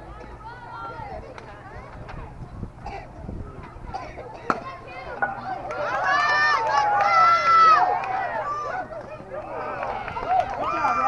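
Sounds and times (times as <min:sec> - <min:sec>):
people shouting and yelling: 0:00.0 - 0:11.0.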